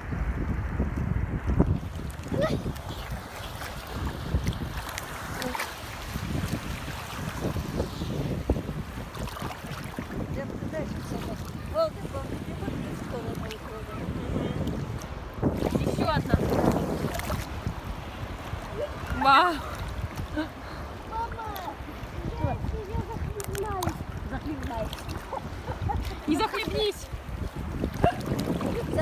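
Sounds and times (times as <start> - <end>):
wind buffeting microphone: 0.0 - 29.0
sea water sloshing and splashing: 0.8 - 29.0.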